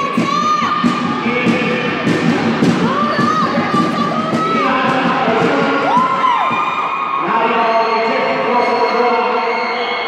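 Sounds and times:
spectators shouting and cheering: 0.0s - 10.0s.

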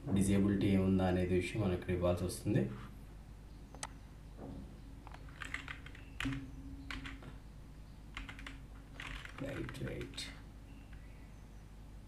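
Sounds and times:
computer keyboard keystrokes: 5.0s - 7.3s, 8.1s - 10.3s.

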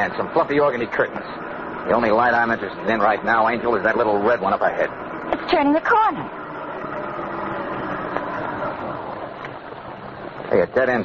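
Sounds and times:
car engine droning: 0.0s - 11.0s.

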